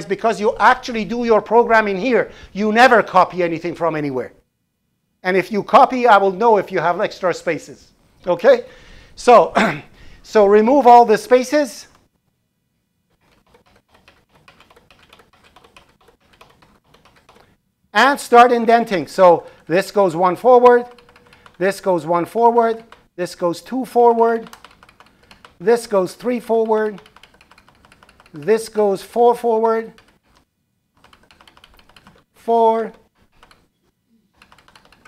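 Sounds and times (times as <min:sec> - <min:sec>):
keyboard keys clicking: 0:13.2 - 0:17.4, 0:20.8 - 0:21.7, 0:24.4 - 0:25.6, 0:26.5 - 0:28.8, 0:29.9 - 0:32.2, 0:33.4 - 0:33.7, 0:34.4 - 0:35.0
computer keyboard key clicks: 0:24.4 - 0:25.6, 0:26.7 - 0:28.5, 0:31.0 - 0:32.2, 0:34.4 - 0:35.0.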